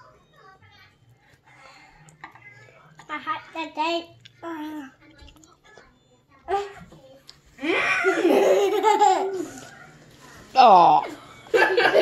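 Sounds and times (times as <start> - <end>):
young boy laughing: 7.6 - 9.6.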